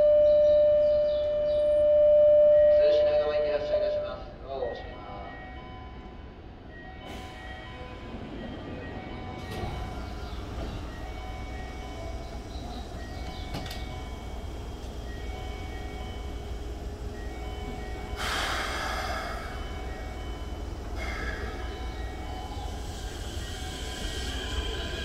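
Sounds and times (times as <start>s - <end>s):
train equipment humming: 5.6s - 25.0s.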